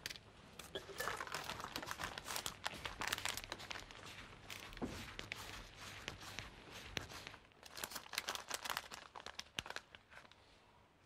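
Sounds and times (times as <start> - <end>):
crinkling and crackling in hands: 0.0 - 10.7.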